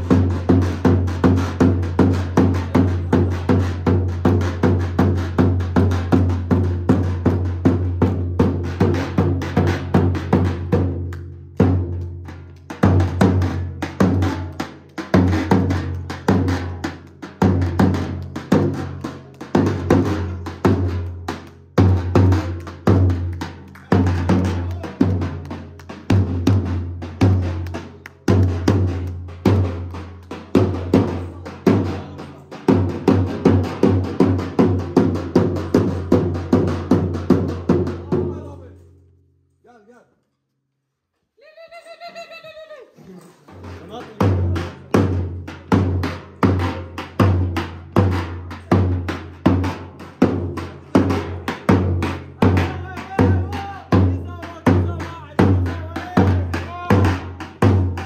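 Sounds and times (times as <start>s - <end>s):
bass drum beaten in dance rhythm: 0.0s - 38.4s, 43.6s - 58.0s.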